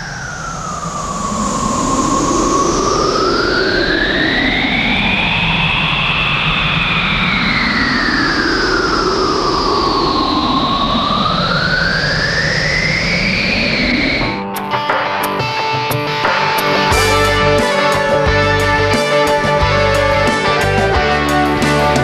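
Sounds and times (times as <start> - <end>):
synthesized sweeping drone: 0.0 - 14.5, 16.1 - 22.0.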